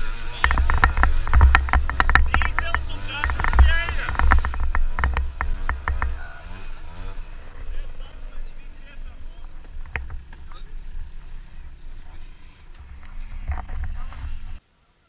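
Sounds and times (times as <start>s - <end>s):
small motorbike engine idling: 0.0s - 14.6s
voices: 0.0s - 14.6s.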